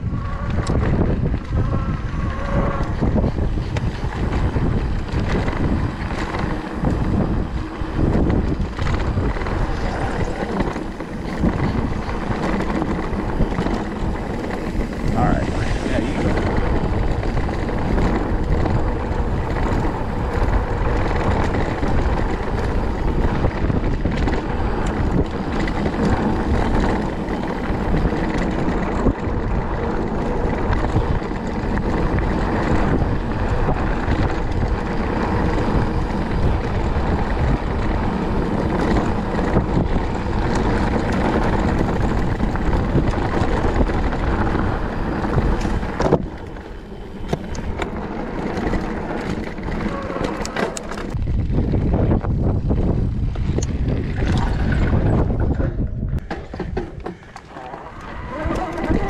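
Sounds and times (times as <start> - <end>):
bike rattling over dirt trail: 0.0 - 59.0
wind on microphone: 0.0 - 59.0.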